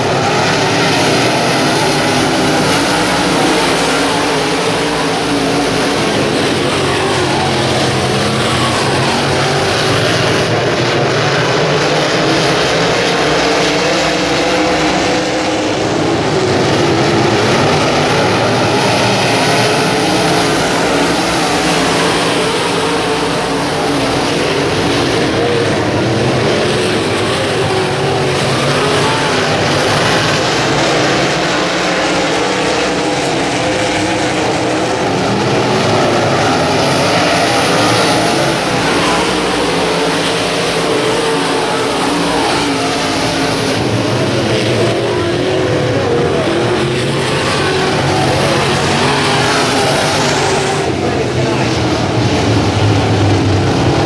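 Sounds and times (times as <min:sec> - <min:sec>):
race car engines droning: 0:00.0 - 0:54.0.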